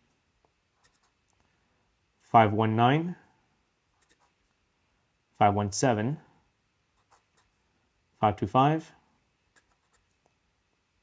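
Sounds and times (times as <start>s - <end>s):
pen scratching on paper: 0.8s - 1.2s, 4.0s - 4.4s, 7.0s - 7.5s, 9.5s - 10.1s
person speaking: 2.2s - 3.3s, 5.4s - 6.3s, 8.2s - 9.0s.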